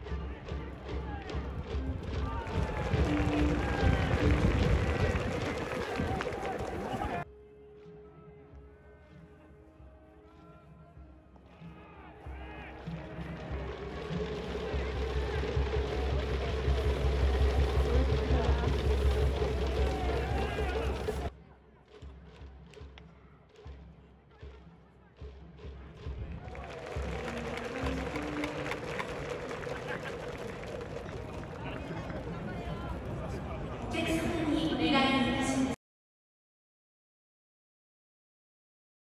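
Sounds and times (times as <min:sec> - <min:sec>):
crowd cheering: 0:00.0 - 0:07.3, 0:10.3 - 0:21.3, 0:26.1 - 0:35.8
stadium music: 0:00.0 - 0:35.8.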